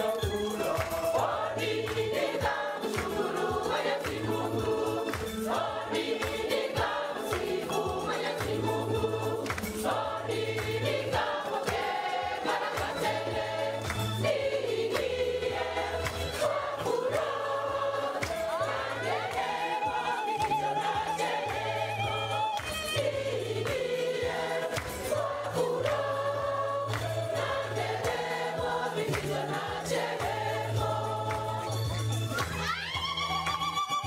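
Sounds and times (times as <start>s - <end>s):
choir singing a gospel hymn: 0.0s - 32.8s.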